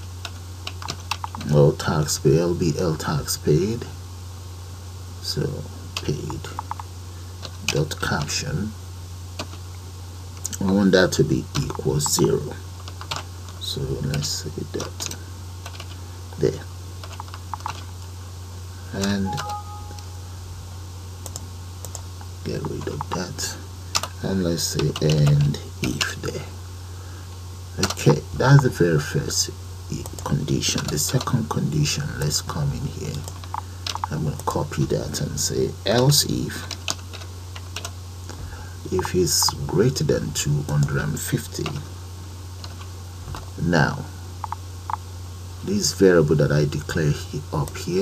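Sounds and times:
steady low hum: 0.0 - 48.0
computer keyboard keystrokes: 0.7 - 1.5, 17.0 - 17.9, 33.2 - 34.1.

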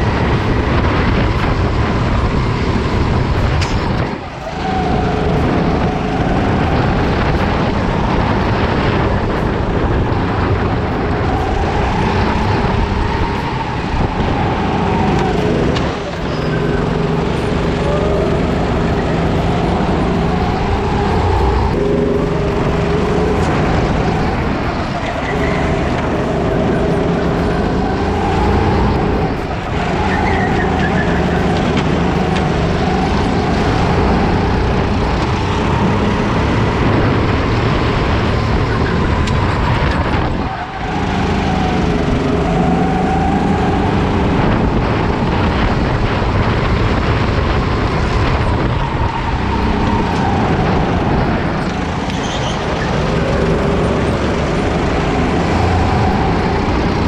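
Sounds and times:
kart engine revving: 0.0 - 57.0.

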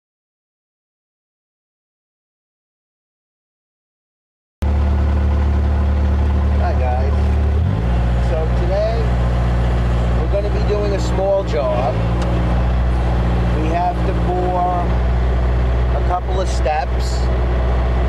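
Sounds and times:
diesel engine running: 4.6 - 18.0.

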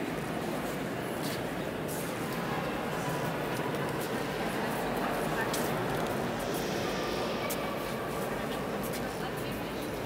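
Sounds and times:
murmur of many people talking: 0.0 - 10.0.

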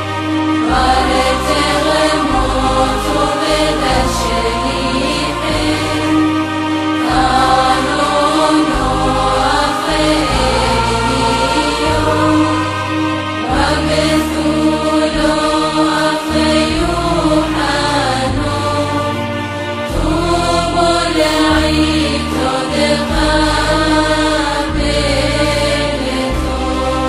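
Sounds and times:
choir singing gliding lines: 0.0 - 27.0
deep bass drone: 0.0 - 27.0.

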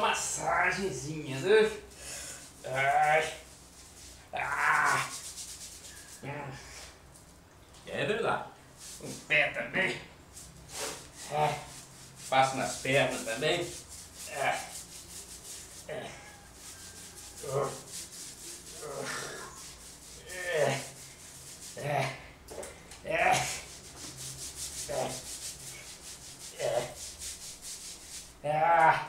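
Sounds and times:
scrubbing soapy skin and hair: 0.0 - 6.3, 8.8 - 9.3, 10.4 - 22.2, 23.0 - 28.6.

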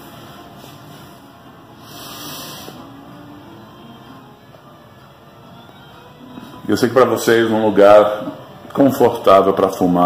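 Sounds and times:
low background noise: 0.0 - 10.0
breathy puff on tobacco pipe: 1.8 - 3.0.

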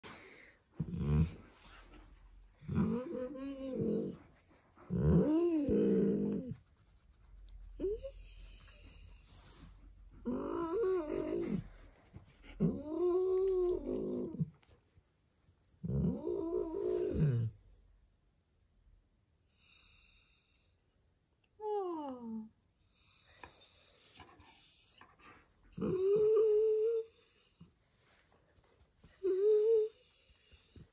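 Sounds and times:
dog whining: 2.6 - 4.2, 4.9 - 6.5, 7.8 - 9.0, 10.2 - 11.8, 12.4 - 14.5, 15.8 - 17.6, 21.6 - 27.7, 29.2 - 30.8
dog moaning vocalization: 2.6 - 6.6, 10.2 - 11.8, 12.4 - 14.6, 15.8 - 17.6, 23.8 - 27.5.

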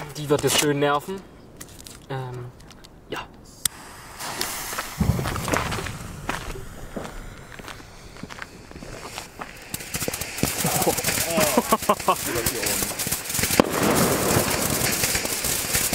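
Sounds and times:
fuse sputtering and crackling: 3.6 - 15.9
firework fountain hissing: 3.7 - 15.9.

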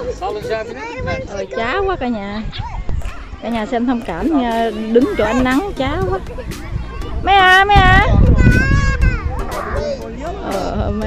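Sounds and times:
children calling out: 7.9 - 10.1.

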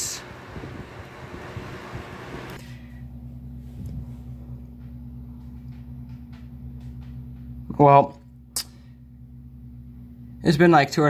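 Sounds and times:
appliance hum: 0.0 - 11.0.

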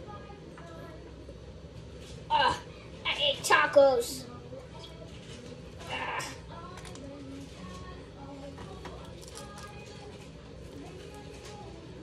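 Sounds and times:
faint speech: 0.0 - 10.2.

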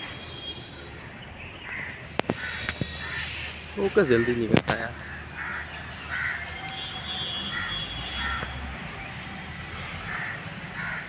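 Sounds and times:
crow cawing: 1.6 - 8.7, 9.8 - 11.0.

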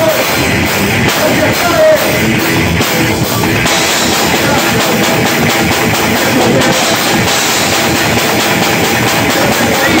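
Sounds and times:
drum strikes: 0.0 - 10.0
rock band playing: 0.0 - 10.0.

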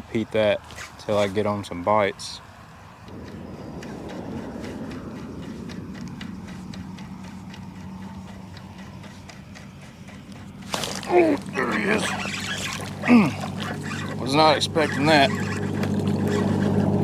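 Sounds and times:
low steady rumble: 2.8 - 17.0
reel ticking: 3.1 - 17.0.

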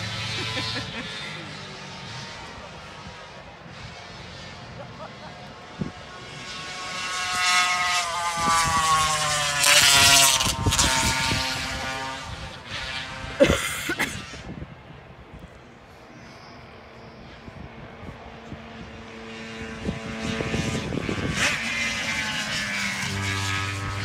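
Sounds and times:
race car engine passing: 0.0 - 14.9, 16.7 - 24.0.

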